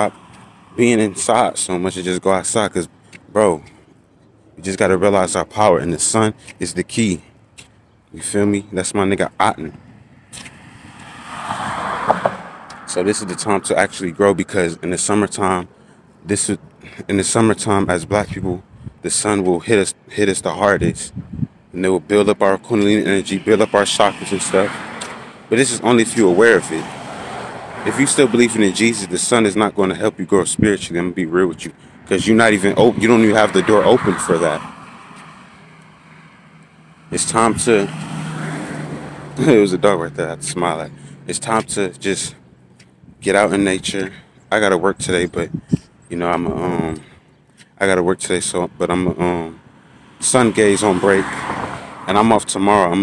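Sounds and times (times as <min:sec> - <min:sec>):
vehicle passing by: 0:10.1 - 0:14.8, 0:23.0 - 0:29.3, 0:31.4 - 0:43.0, 0:49.5 - 0:53.0.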